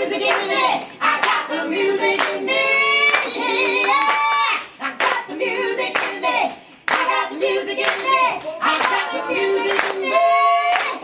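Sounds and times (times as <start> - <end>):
hand claps keeping the beat: 0.0 - 11.0.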